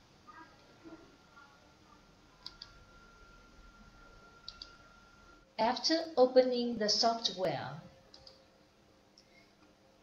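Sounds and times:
faint thin whine: 0:00.0 - 0:05.6.

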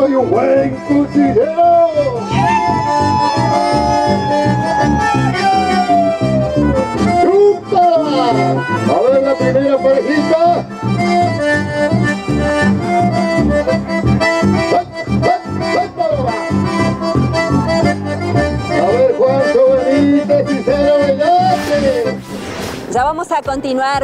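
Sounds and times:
accordion melody: 0:00.0 - 0:24.0
pulsing bass beat: 0:10.9 - 0:22.3, 0:23.0 - 0:24.0.

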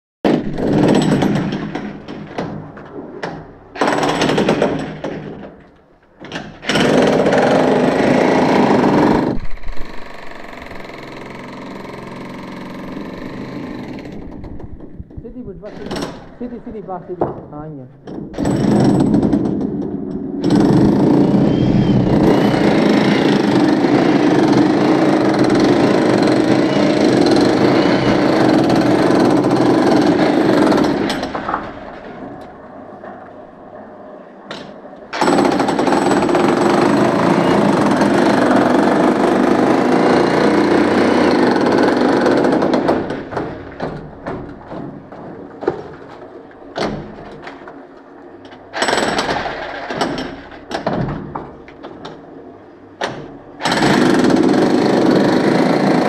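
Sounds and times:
demolition hammer breaking wall: 0:00.3 - 0:16.4, 0:18.0 - 0:32.6, 0:34.5 - 0:47.7, 0:48.5 - 0:52.3, 0:53.0 - 0:56.0.

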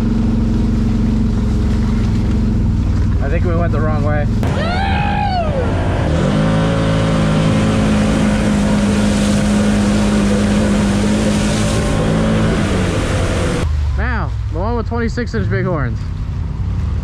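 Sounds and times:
engine revving: 0:00.0 - 0:14.3
dirt spraying against machine: 0:05.7 - 0:13.6.

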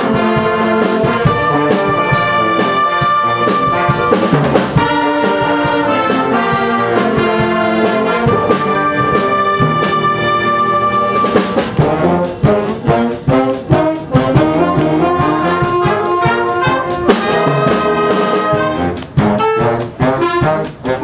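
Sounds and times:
brass band playing: 0:00.0 - 0:21.0
sharp percussion strikes: 0:00.0 - 0:21.0.

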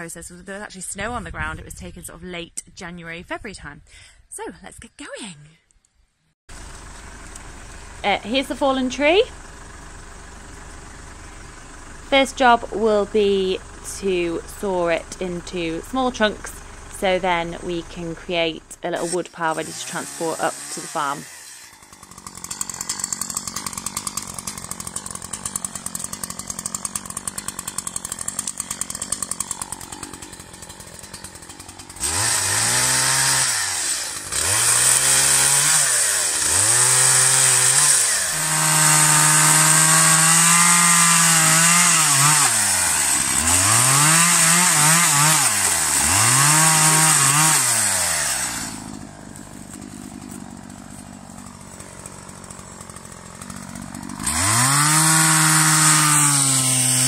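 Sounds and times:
chainsaw revving and cutting: 0:06.5 - 0:10.1, 0:10.8 - 0:57.0.

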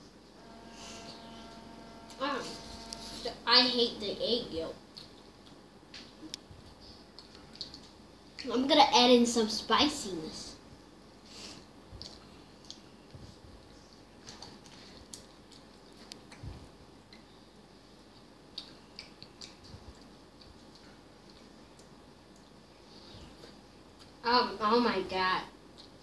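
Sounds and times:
child chewing noodles: 0:04.8 - 0:08.5, 0:11.3 - 0:24.2.

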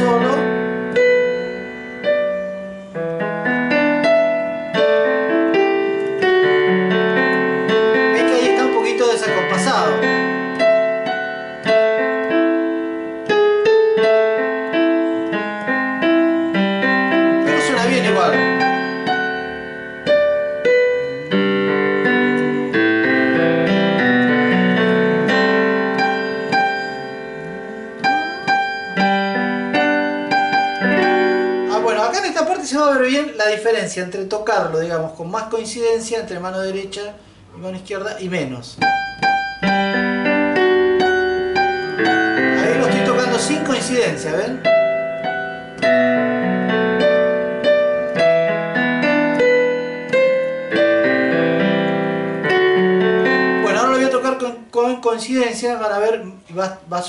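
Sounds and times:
digital piano melody over arpeggios: 0:00.0 - 0:56.3.

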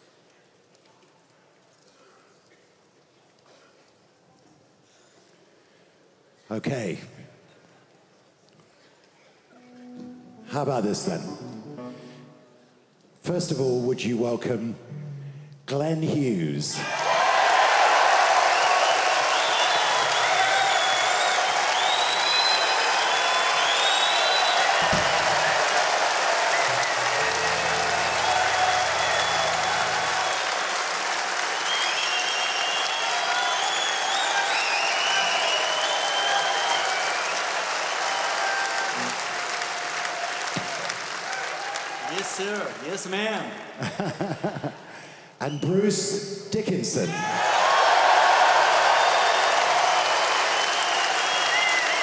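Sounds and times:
shouts from audience: 0:16.8 - 0:42.6, 0:47.1 - 0:52.0
audience applauding and cheering: 0:16.8 - 0:43.2, 0:47.1 - 0:52.0.

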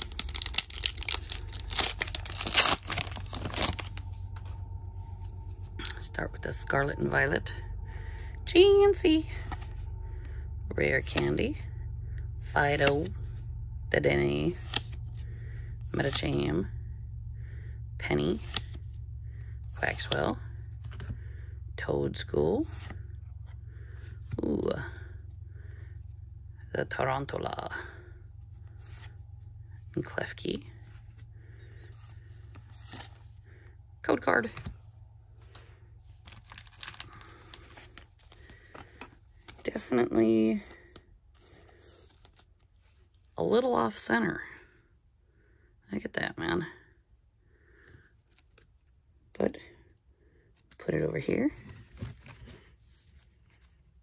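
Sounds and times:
foil wrapper tearing and crinkling: 0:00.0 - 0:04.0, 0:36.3 - 0:39.0
steady low hum: 0:00.0 - 0:54.0.

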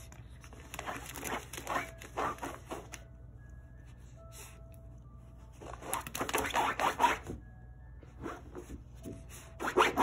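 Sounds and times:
puppy claws scratching fabric: 0:00.0 - 0:03.0, 0:05.6 - 0:07.3.

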